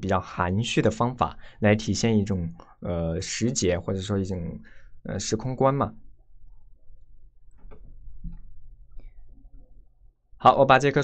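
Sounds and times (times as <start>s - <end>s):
faint soft taps: 7.5s - 9.7s.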